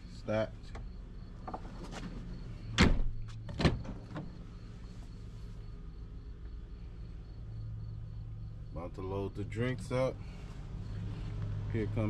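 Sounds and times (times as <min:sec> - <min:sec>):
vehicle doors shutting: 0:00.8 - 0:04.5.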